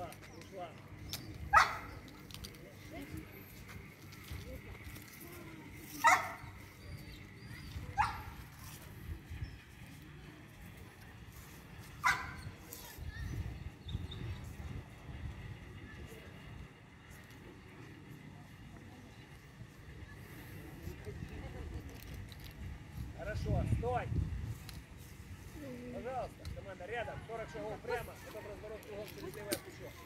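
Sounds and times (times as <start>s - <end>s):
dog barking: 1.5s - 1.9s, 6.0s - 6.4s, 8.0s - 8.4s, 12.0s - 12.4s.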